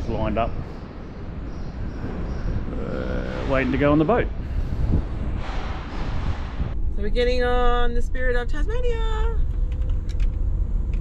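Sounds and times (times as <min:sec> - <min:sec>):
vehicle rolling rumble and hiss: 0:00.0 - 0:07.8.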